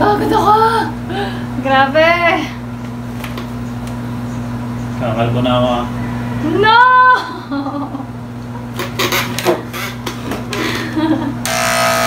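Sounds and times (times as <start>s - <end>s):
electric hair clipper buzzing: 11.4s - 12.0s.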